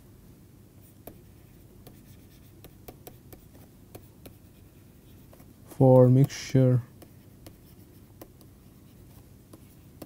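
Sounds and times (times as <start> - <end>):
stylus tapping and scratching on tablet: 0.9 - 10.0.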